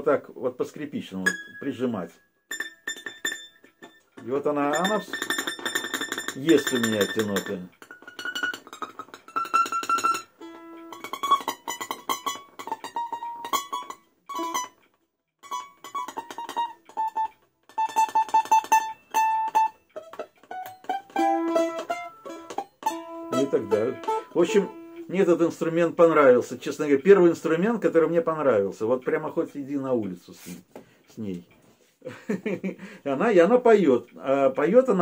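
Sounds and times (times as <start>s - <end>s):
finger-plucked balalaika melody: 1.1s - 29.5s.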